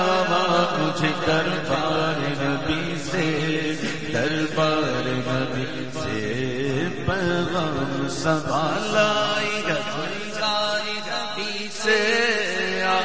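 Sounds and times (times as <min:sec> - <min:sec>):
hummed vocal drone: 0:00.0 - 0:13.0.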